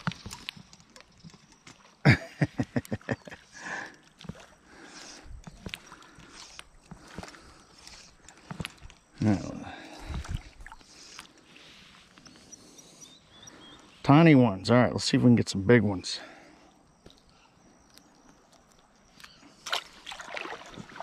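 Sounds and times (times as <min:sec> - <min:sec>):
hand sloshing in shallow water: 0:19.6 - 0:21.0.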